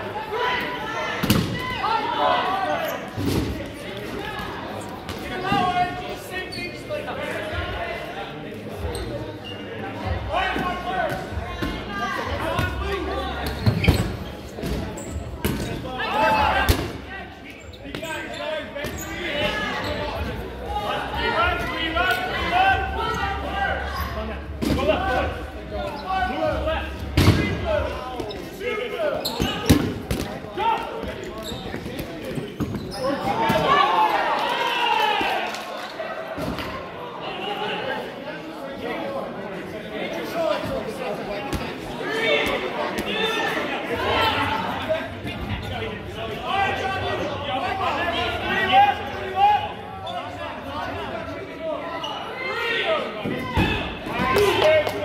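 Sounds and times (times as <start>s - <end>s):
players calling and shouting: 0.0s - 55.0s
dodgeballs thudding: 1.2s - 1.8s, 10.5s - 17.1s, 27.0s - 28.5s, 29.3s - 33.7s.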